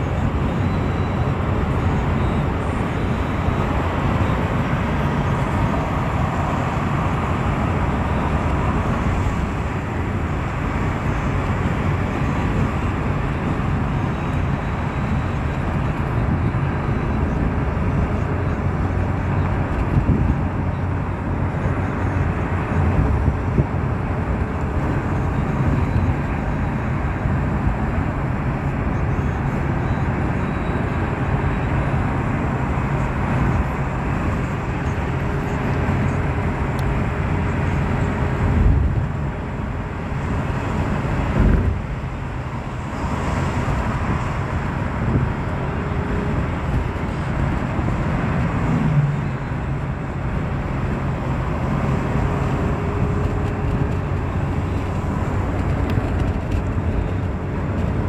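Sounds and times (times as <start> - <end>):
car road noise from inside: 0.0 - 58.0.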